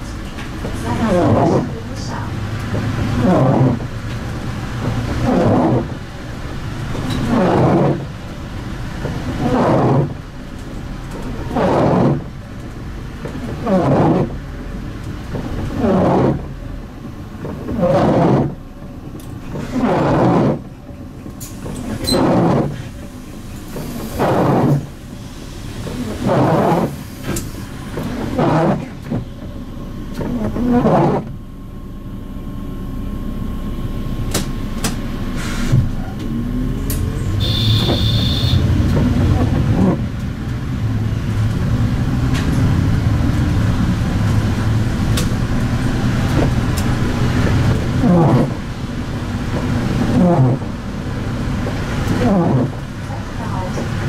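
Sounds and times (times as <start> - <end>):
windscreen wipers sweeping: 0.0 - 54.0.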